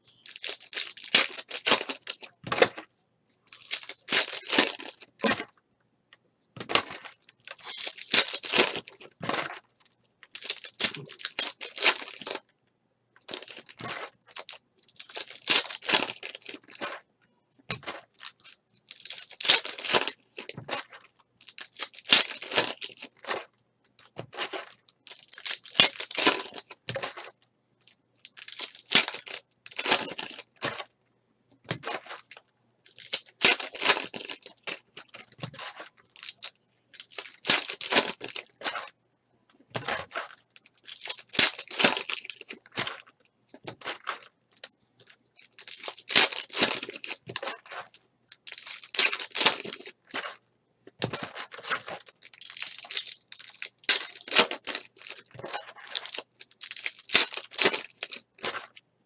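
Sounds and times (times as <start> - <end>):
foil wrappers crinkling and tearing: 0.1 - 2.8, 3.5 - 5.4, 6.7 - 9.6, 10.3 - 12.4, 13.2 - 17.0, 17.7 - 23.5, 24.3 - 27.4, 28.2 - 30.9, 31.7 - 38.9, 39.7 - 50.4, 51.0 - 58.8.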